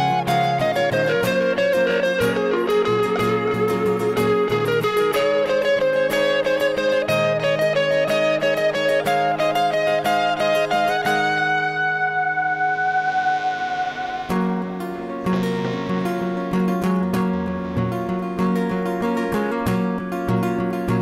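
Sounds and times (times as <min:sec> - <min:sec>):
acoustic guitar: 0:00.0 - 0:21.0
electric guitar: 0:00.0 - 0:21.0
steady bass line: 0:11.4 - 0:21.0.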